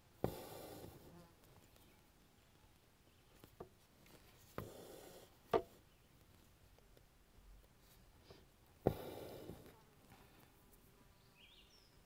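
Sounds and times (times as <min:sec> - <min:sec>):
thread rasping through canvas: 0:00.2 - 0:01.8, 0:03.3 - 0:06.9, 0:07.7 - 0:09.9.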